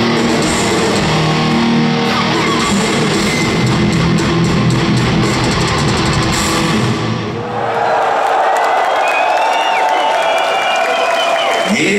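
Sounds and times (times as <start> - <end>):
drum kit: 0.0 - 7.2
distorted electric guitar: 0.0 - 7.4
heavy metal band playing live: 0.0 - 7.4
audience cheering: 7.1 - 11.9
audience whistles: 8.6 - 11.9.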